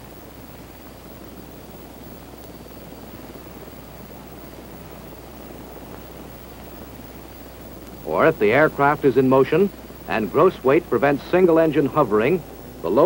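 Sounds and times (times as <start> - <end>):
helicopter rotors and engines: 0.0 - 13.0
low hum: 0.0 - 13.0.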